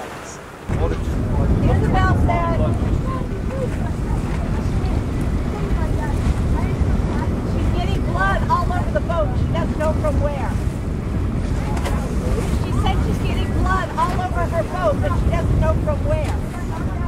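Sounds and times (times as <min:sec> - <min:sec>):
choppy sea water: 0:00.0 - 0:17.0
wind buffeting microphone: 0:00.0 - 0:17.0.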